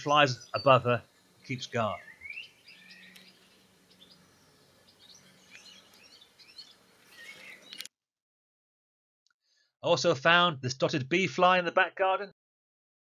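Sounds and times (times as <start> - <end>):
birds chirping: 0.0 - 7.9.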